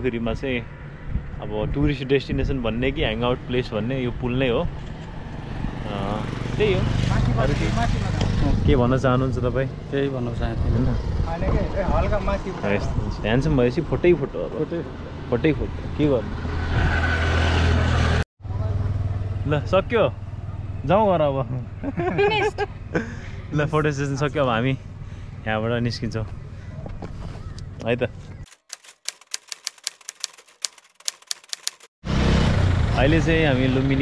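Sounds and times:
vehicle rumble with road noise: 0.0 - 28.5, 32.1 - 34.0
loud street noise: 14.8 - 19.5, 32.0 - 34.0
typewriter key clacks: 28.5 - 31.9.

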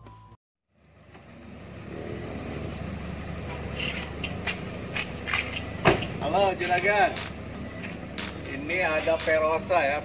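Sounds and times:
vehicle engine idling: 0.7 - 10.0.

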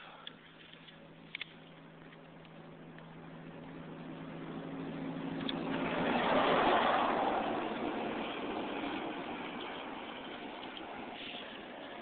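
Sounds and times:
road vehicle passing by: 1.8 - 12.0.

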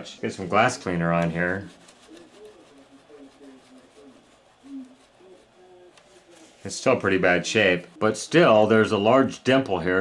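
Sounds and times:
paper towel rubbing on plastic: 0.4 - 9.5
murmur of voice: 1.5 - 8.6.

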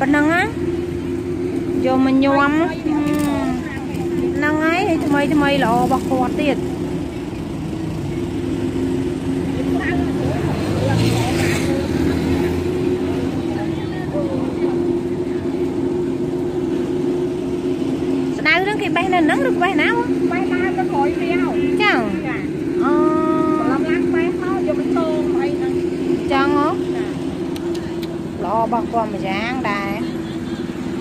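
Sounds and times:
people talking: 0.0 - 17.1, 18.2 - 31.0
steady mechanical hum: 0.0 - 31.0.

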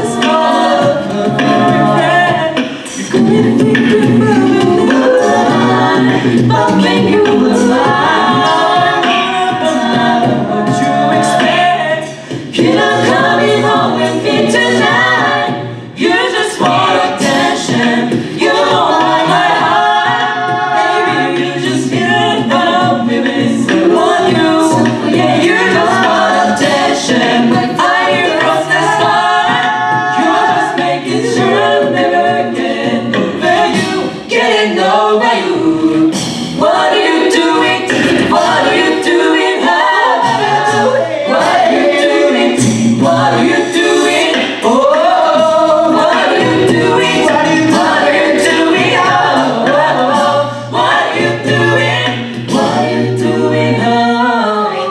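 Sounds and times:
a cappella group singing: 0.0 - 54.9
vocal percussion beat: 0.0 - 54.9.

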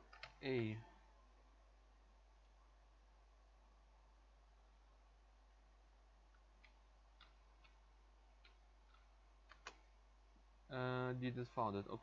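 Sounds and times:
computer keyboard clicks: 0.0 - 0.4, 8.4 - 9.8
faint low hum: 0.0 - 12.0.

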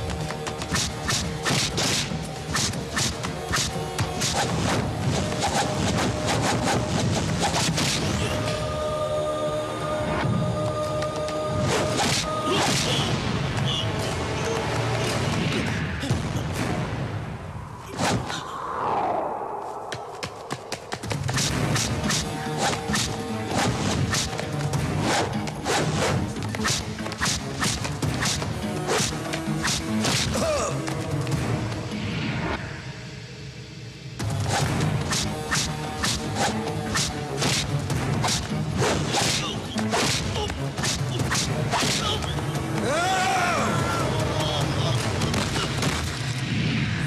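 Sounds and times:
fight scene background music: 0.0 - 18.4, 20.2 - 32.6, 34.1 - 47.0
swishes: 17.5 - 24.4.

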